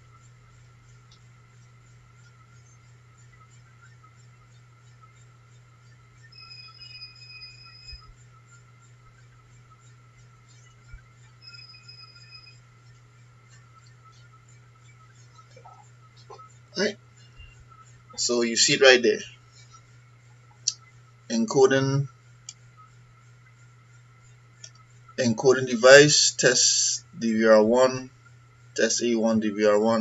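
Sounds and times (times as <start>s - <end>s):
faint steady hum: 0.0s - 30.0s
electronic alarm beeps: 6.1s - 8.7s, 10.5s - 14.1s.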